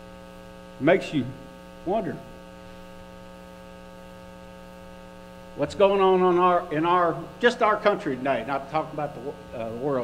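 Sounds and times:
electrical mains hum: 0:00.0 - 0:10.0
man's voice: 0:05.6 - 0:10.0.

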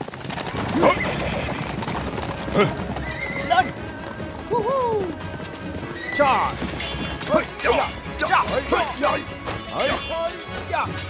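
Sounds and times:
horses whinnying: 0:00.1 - 0:10.2.

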